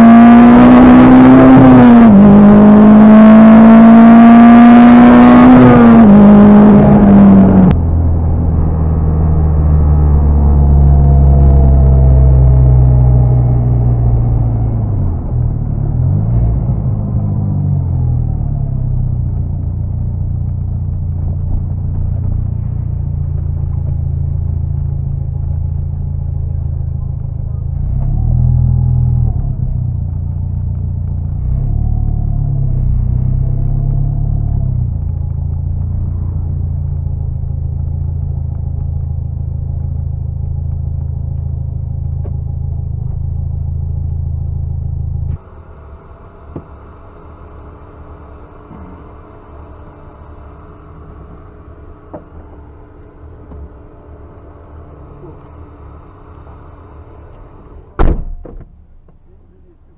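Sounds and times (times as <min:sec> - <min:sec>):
car engine running: 0:00.0 - 0:59.9.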